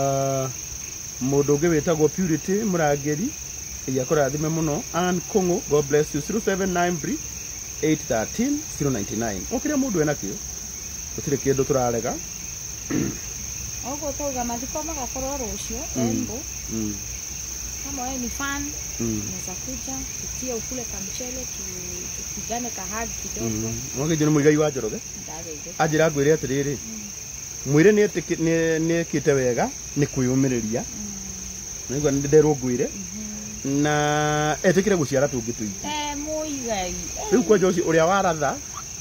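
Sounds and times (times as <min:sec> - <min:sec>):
crickets chirping: 0:00.0 - 0:39.0
low talking: 0:15.3 - 0:17.0, 0:18.0 - 0:27.1, 0:30.0 - 0:38.8.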